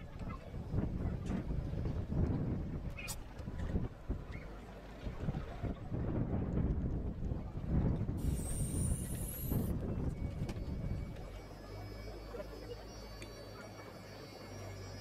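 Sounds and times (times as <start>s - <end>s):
wind buffeting microphone: 0.0s - 11.3s
faint high whine rising: 8.2s - 15.0s.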